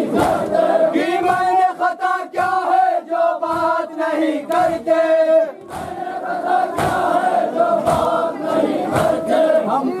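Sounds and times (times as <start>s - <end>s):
men chanting in unison: 0.0s - 10.0s
chest-beating slaps: 0.1s - 0.6s, 5.6s - 6.0s, 6.7s - 7.2s, 7.8s - 8.2s.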